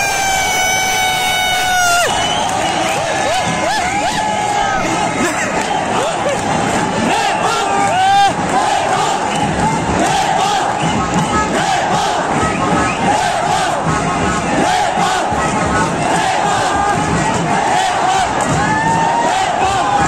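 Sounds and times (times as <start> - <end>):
loud shout nearby: 0.0 - 9.2
stadium crowd shouting: 0.0 - 20.0.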